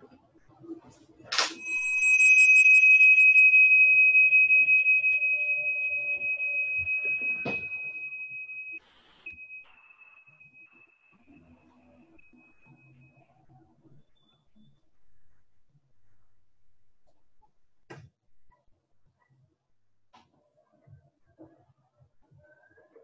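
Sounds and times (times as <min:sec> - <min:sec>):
meditation bell ringing: 0:01.4 - 0:13.1.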